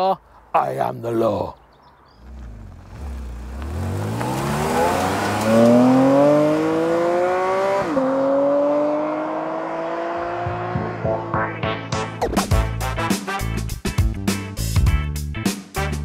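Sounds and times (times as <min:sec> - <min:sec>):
car engine accelerating hard: 0:02.2 - 0:11.4.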